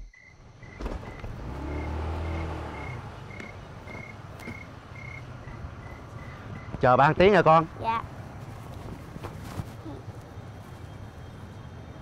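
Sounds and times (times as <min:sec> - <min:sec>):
cricket chirping: 0:00.0 - 0:06.8
motor scooter engine: 0:00.7 - 0:06.8.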